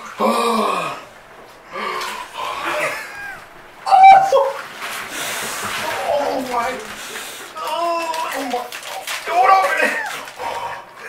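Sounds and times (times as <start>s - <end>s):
water sloshing in a bathtub: 0.0s - 11.0s
man crying out: 1.7s - 4.6s, 9.3s - 10.4s.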